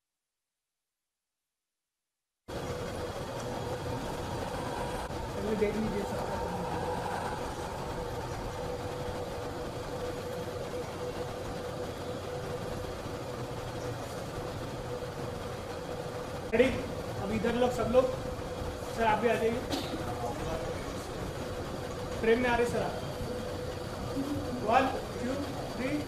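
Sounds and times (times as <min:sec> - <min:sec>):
steady background hum: 0:02.5 - 0:26.0.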